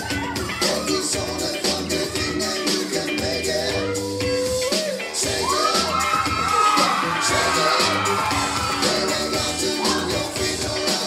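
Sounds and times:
long high-pitched shout: 0.0 - 1.3, 3.7 - 10.4
audience cheering: 0.0 - 2.9, 4.7 - 11.0
upbeat dance music: 0.0 - 11.0.

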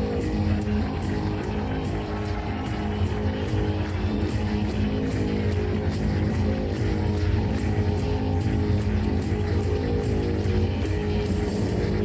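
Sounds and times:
bass guitar: 0.0 - 12.0
distorted electric guitar: 0.0 - 12.0
drums: 0.0 - 12.0.

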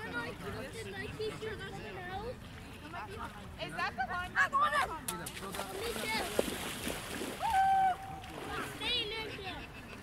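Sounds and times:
water splashing: 5.2 - 9.3.

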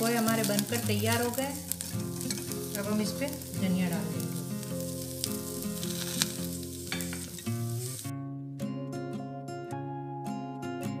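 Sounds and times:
food sizzling in a pan: 0.0 - 8.1
background music: 0.0 - 11.0
steel spoon stirring: 1.7 - 2.9, 5.2 - 7.5.

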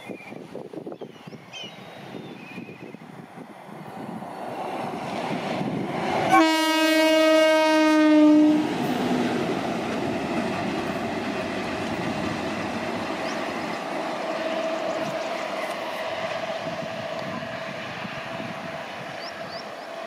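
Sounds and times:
locomotive rumbling on rails: 1.9 - 20.0
locomotive air horn blast: 6.3 - 8.7.

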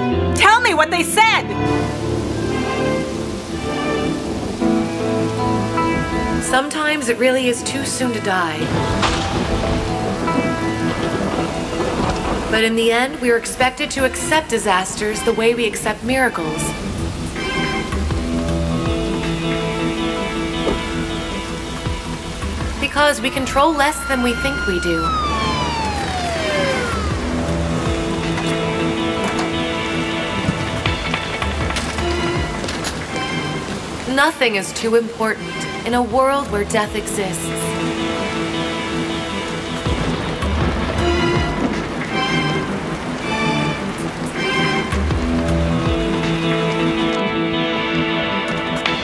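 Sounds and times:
music of held chords: 0.0 - 12.5, 16.1 - 34.1, 35.5 - 49.0
heavy rain pouring: 0.0 - 49.0
ambulance siren sliding down: 22.8 - 28.7.

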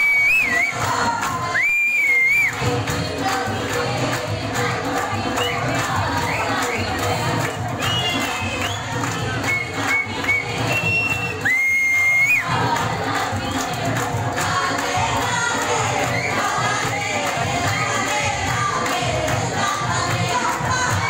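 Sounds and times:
shrill whistles: 0.0 - 2.6, 5.4 - 6.9, 7.8 - 12.5.

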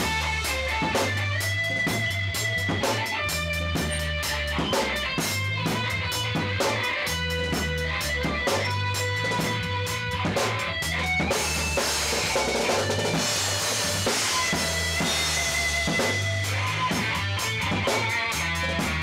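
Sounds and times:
drum kit beat: 0.0 - 19.0
electric bass: 0.0 - 19.0.

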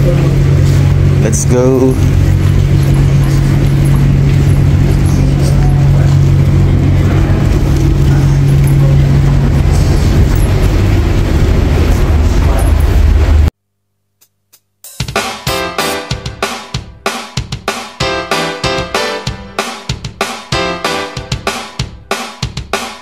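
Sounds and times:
low machinery hum: 0.0 - 13.5.

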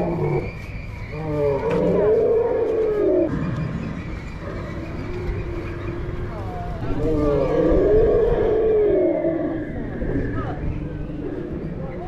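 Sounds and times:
dinosaur roars over loudspeakers: 4.4 - 12.0.

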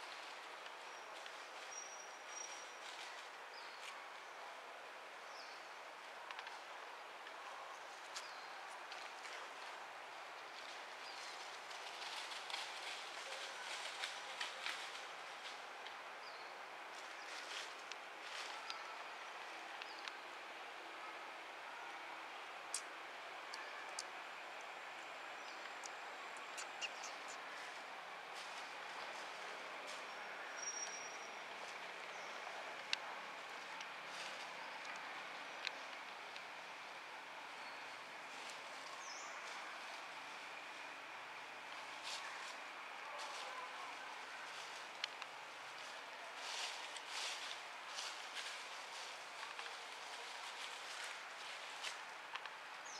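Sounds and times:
outdoor background hiss: 0.0 - 52.9
small clicks and crackles: 10.4 - 16.0, 46.4 - 52.6.

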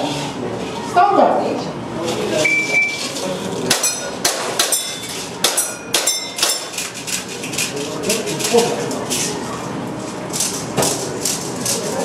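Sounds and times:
steel plates ringing: 3.7 - 6.8.

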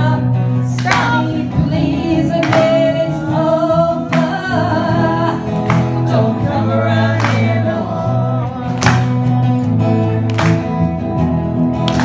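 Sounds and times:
woman singing pop-rock: 0.0 - 8.6
strummed acoustic guitar: 0.0 - 12.0.

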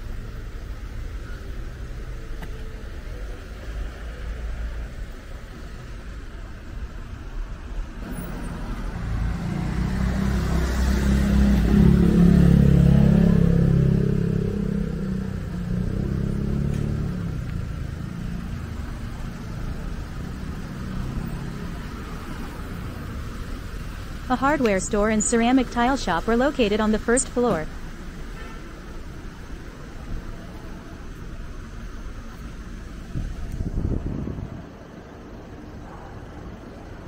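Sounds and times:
traffic noise: 0.0 - 37.0
vehicle engine driving past: 8.0 - 23.1.

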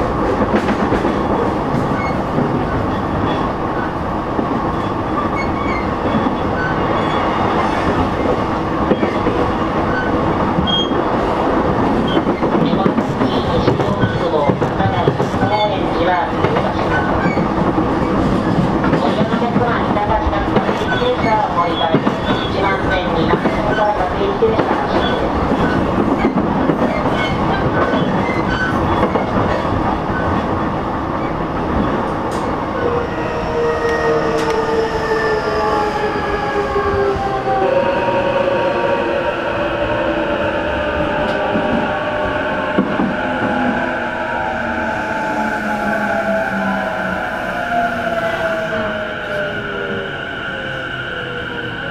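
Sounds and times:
train rolling on rails: 0.0 - 51.9.

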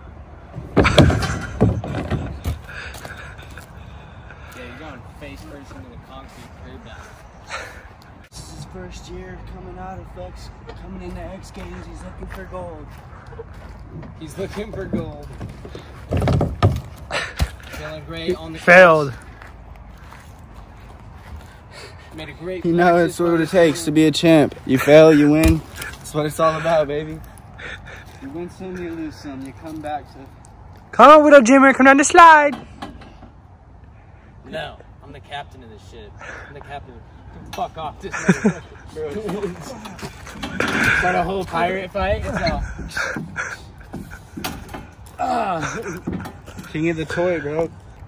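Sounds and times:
low steady outdoor rumble: 0.0 - 48.0.

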